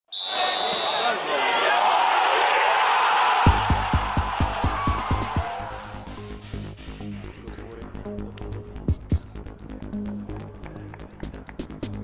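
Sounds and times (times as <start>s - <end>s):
hi-hat ticks: 6.2s - 11.8s.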